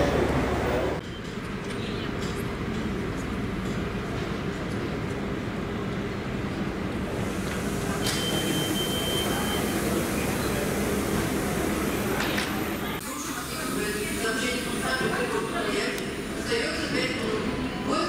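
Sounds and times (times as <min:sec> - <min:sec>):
train equipment hum: 0:00.0 - 0:18.0.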